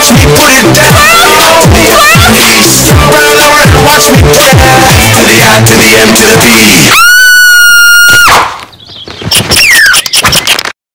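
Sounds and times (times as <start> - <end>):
high cartoon squeal: 6.8 - 8.6, 9.3 - 10.6
cartoon clicks and squeaks: 8.2 - 10.8.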